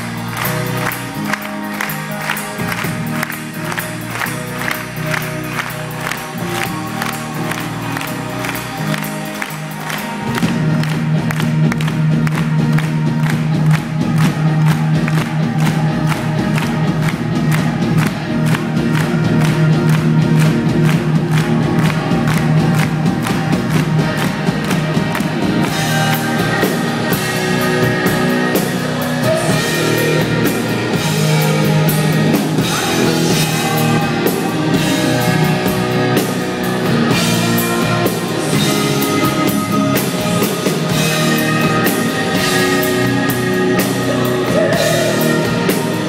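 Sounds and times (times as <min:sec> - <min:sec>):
crowd noise: 0:00.0 - 0:46.0
live metal band playing: 0:00.0 - 0:46.0.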